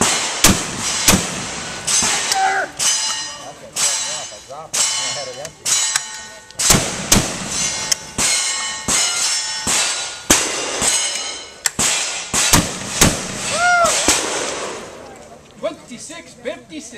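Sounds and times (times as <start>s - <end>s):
shotgun shots: 0.0s - 3.0s, 6.6s - 15.0s
ringing metal clang: 1.9s - 12.6s.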